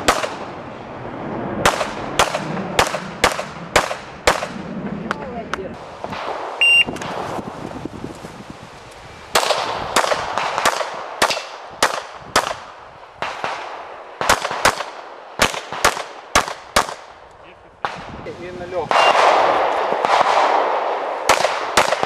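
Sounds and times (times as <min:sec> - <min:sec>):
pistol shots with echo: 0:01.6 - 0:04.5, 0:09.4 - 0:12.6, 0:13.2 - 0:17.1, 0:18.9 - 0:22.0
shot timer beep: 0:06.6 - 0:07.0.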